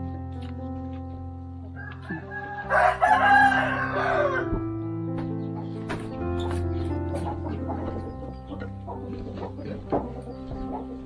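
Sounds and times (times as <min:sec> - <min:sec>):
background music: 0:00.0 - 0:11.0
rooster crowing: 0:01.8 - 0:04.6.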